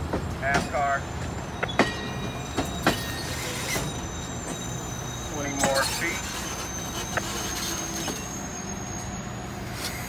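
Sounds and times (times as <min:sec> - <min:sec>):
train rumble and hum: 0:00.0 - 0:10.0.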